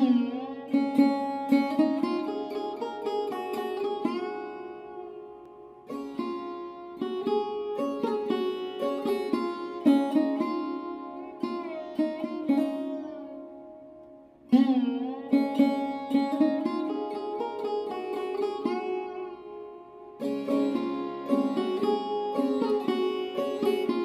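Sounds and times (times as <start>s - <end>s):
sitar plucking melody: 0.0s - 24.0s.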